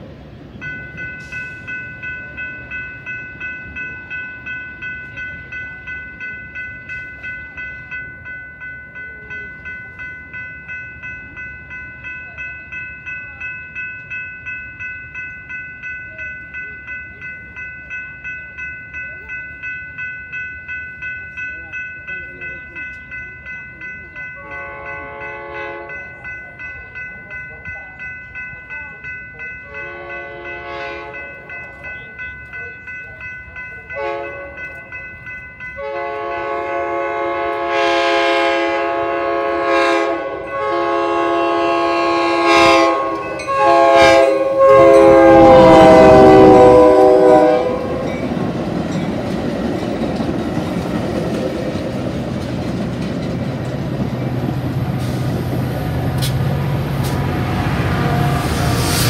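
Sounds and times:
crossing warning bell ringing: 0:00.0 - 0:59.0
train cars rumbling past: 0:00.0 - 0:59.0
train horn blasts: 0:24.4 - 0:26.0, 0:29.7 - 0:31.2, 0:34.0 - 0:34.5, 0:35.8 - 0:48.2, 0:57.0 - 0:59.0.

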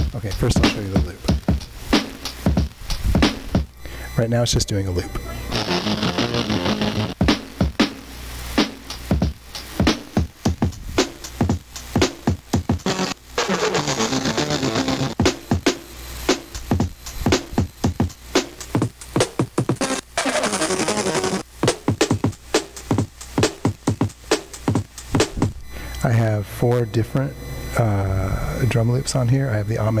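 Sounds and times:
drum loop: 0:00.0 - 0:30.0
hiss: 0:01.5 - 0:03.6.

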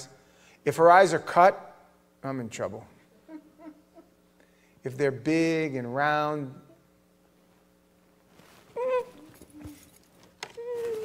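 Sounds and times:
person whimpering: 0:08.8 - 0:09.9, 0:10.5 - 0:11.0.

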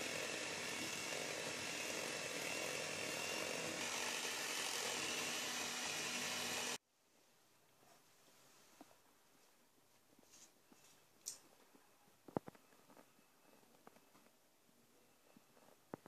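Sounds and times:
electric hand mixer whipping cream: 0:00.0 - 0:06.8.

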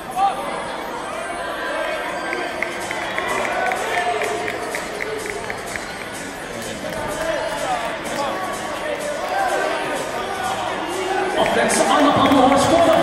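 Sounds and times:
crowd chatter: 0:00.0 - 0:13.0
music playing: 0:01.8 - 0:13.0.

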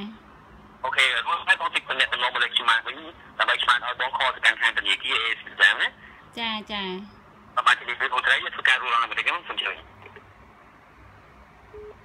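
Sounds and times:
short phone beep: 0:11.7 - 0:12.0.

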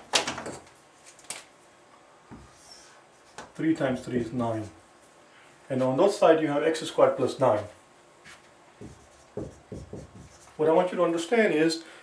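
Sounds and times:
marker writing on whiteboard: 0:08.3 - 0:10.6.

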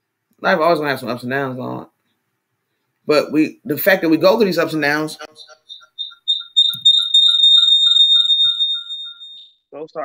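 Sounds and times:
short electronic beeps: 0:05.2 - 0:09.6.

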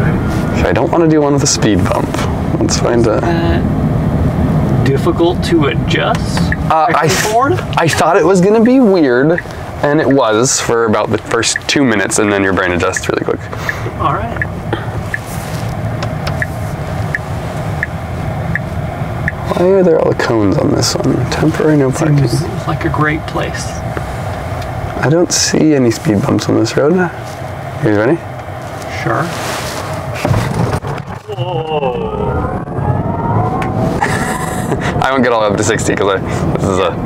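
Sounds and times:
road and tyre rumble: 0:00.0 - 0:37.0
turn signal ticking: 0:06.1 - 0:19.6.

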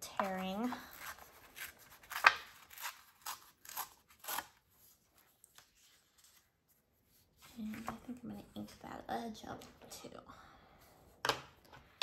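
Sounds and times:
paper tearing: 0:01.0 - 0:04.8.

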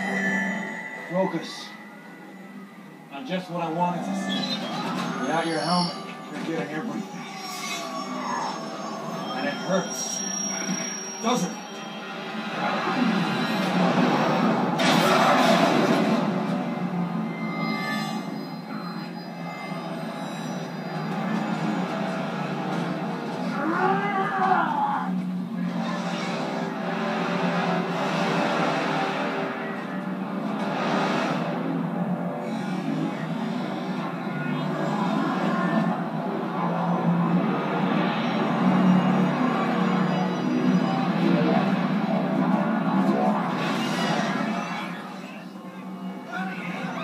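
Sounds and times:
dramatic film score from speakers: 0:00.0 - 0:47.0.

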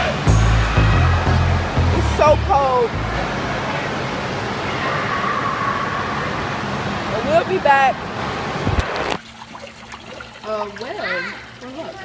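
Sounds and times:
crowd noise: 0:00.0 - 0:08.8
rushing water: 0:00.0 - 0:12.0
child's voice: 0:10.9 - 0:12.0.

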